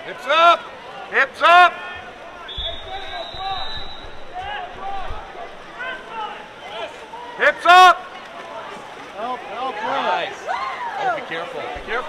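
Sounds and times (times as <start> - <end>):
people shouting and calling: 0.0 - 12.0
low thumps: 2.0 - 6.0, 11.8 - 12.0.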